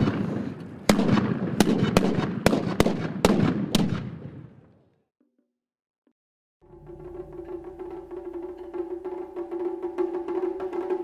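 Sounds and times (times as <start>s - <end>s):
guns firing sharp shots: 0.0s - 4.6s.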